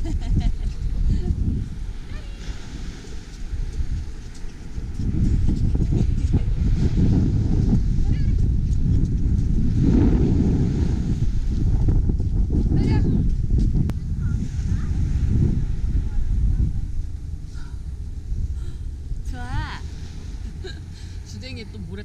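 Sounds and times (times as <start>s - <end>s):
wind noise on microphone: 0.0s - 22.0s.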